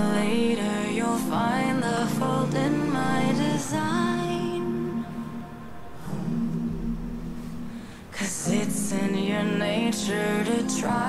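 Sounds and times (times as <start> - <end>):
a cappella group singing: 0.0 - 6.6, 8.1 - 11.0.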